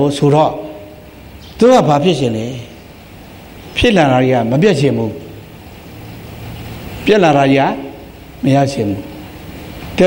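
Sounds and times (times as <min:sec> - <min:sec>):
man speaking: 0:00.0 - 0:01.0, 0:01.6 - 0:02.8, 0:03.8 - 0:05.4, 0:07.0 - 0:09.2
low background hum: 0:00.0 - 0:10.0.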